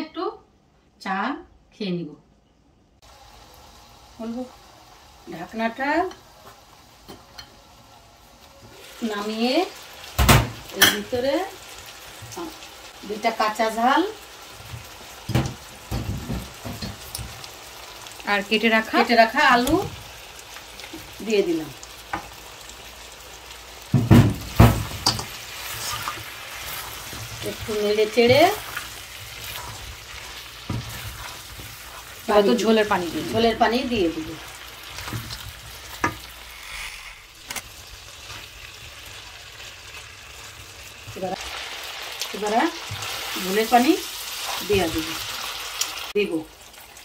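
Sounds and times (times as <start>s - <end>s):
curry sizzling in a wok: 3.0s - 47.0s
spatula stirring: 24.4s - 39.3s.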